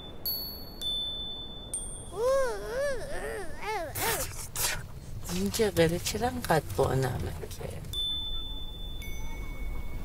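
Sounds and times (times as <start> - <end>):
low steady rumble: 0.0 - 10.0
ringing chime tones: 8.0 - 10.0.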